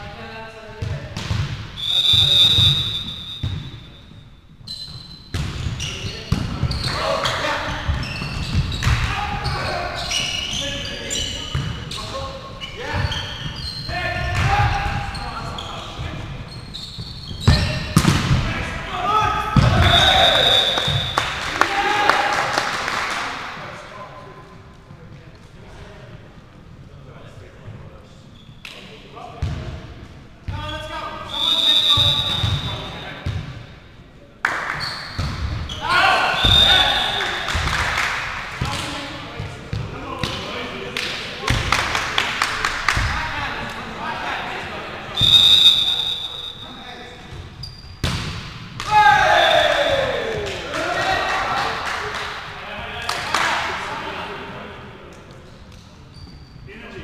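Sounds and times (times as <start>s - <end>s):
referee's whistle blasts: 1.8s - 6.0s, 19.6s - 21.4s, 30.7s - 33.2s, 34.8s - 37.5s, 45.2s - 46.9s
volleyball hits: 5.3s - 9.6s, 17.4s - 18.7s, 19.5s - 21.7s, 34.4s - 43.2s, 48.0s - 51.2s
players shouting: 14.0s - 15.7s, 18.4s - 22.8s, 35.7s - 37.7s, 48.8s - 51.8s.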